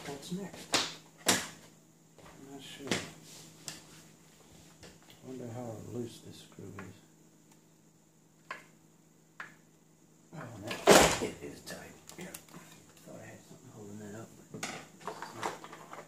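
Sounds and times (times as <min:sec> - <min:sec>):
handling and clattering noises: 0:14.6 - 0:16.0.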